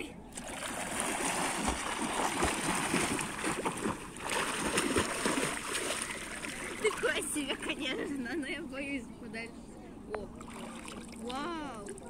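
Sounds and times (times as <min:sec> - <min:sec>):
swimmer splashing in water: 0:00.4 - 0:07.2.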